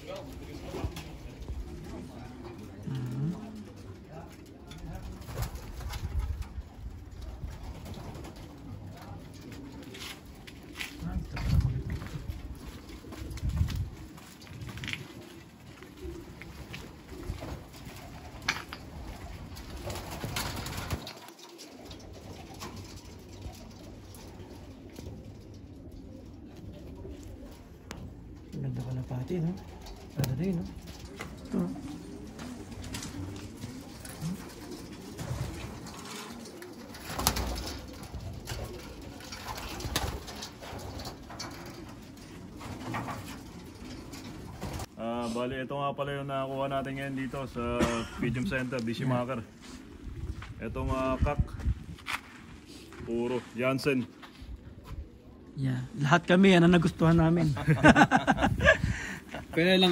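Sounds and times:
pigeons cooing: 0.0 - 45.5, 46.2 - 51.8, 54.0 - 59.9.

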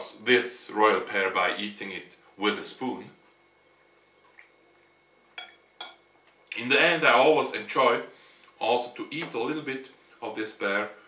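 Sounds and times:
metal cutlery clinking on plate: 5.4 - 6.1.

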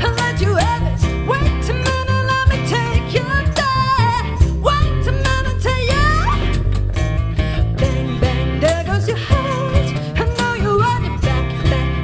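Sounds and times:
acoustic guitar: 0.0 - 12.0
cajon beats: 0.0 - 12.0
person singing: 0.0 - 12.0
upright bass: 0.0 - 12.0.

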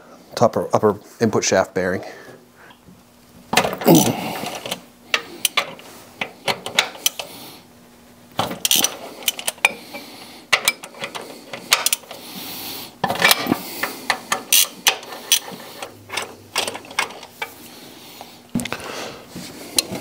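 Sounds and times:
hand ratchet clicking: 4.4 - 7.3, 8.5 - 9.8, 10.5 - 12.2, 13.1 - 17.5.

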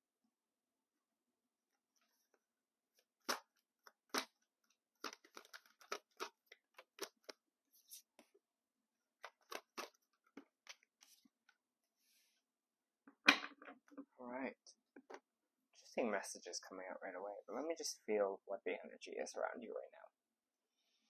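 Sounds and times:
cards being shuffled: 3.0 - 4.4, 5.0 - 8.2, 9.2 - 11.3.

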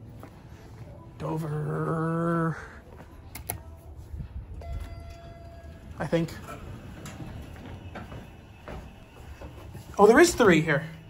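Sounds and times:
elevator steady tone: 3.6 - 11.0
elevator rumble: 3.9 - 11.0.

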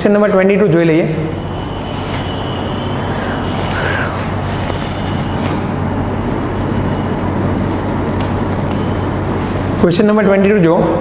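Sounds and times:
low hum: 1.2 - 9.8
chalk scratching on blackboard: 3.0 - 9.7.

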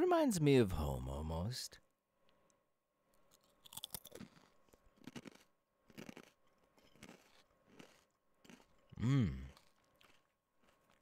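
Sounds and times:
chewing crunchy chips: 3.2 - 11.0.

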